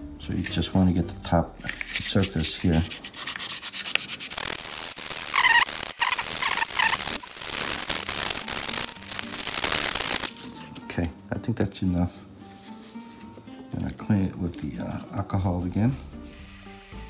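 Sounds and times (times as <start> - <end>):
sandpaper rubbing metal: 1.6 - 7.3.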